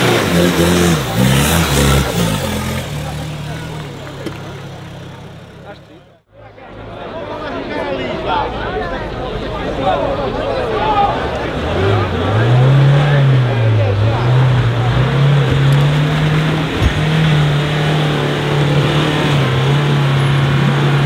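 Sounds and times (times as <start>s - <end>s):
pickup engine revving: 0.0s - 6.0s, 11.1s - 21.0s
crowd voices: 0.0s - 21.0s.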